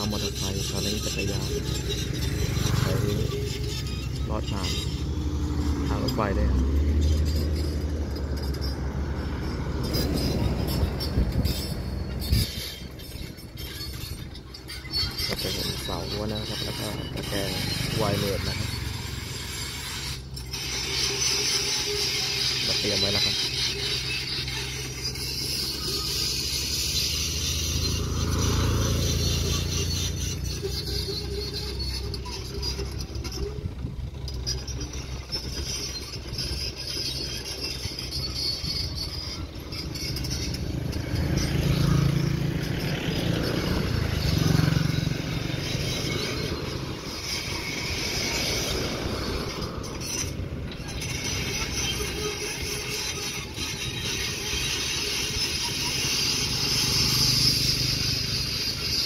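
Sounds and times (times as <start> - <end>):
diesel engine running: 0.0 - 59.0
road traffic passing: 0.0 - 59.0.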